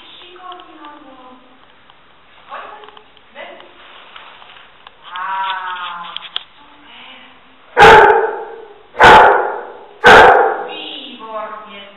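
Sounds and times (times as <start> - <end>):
dog barking: 7.8 - 10.7.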